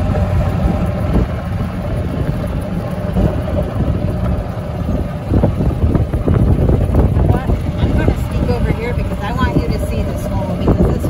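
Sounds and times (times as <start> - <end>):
golf cart rumbling on gravel: 0.0 - 11.0
wind buffeting microphone: 0.0 - 11.0.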